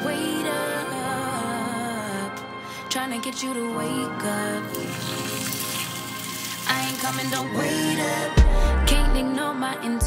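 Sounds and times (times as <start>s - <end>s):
background music with singing: 0.0s - 10.0s.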